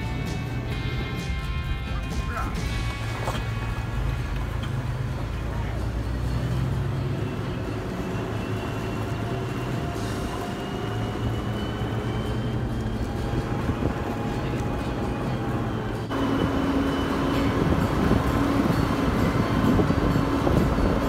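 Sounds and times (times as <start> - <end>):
engine and tyre rumble: 0.0 - 21.0
faint rising tone: 6.2 - 21.0.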